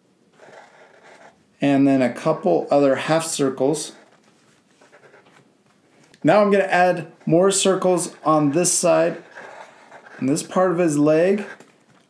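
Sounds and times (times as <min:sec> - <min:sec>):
markers squeaking on paper: 0:00.4 - 0:01.4, 0:07.6 - 0:11.8.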